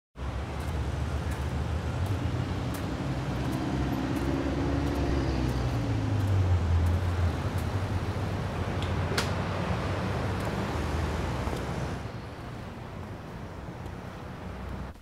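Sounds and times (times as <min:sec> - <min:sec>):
vehicle passing: 0:00.2 - 0:14.9
road traffic rumble: 0:00.2 - 0:15.0.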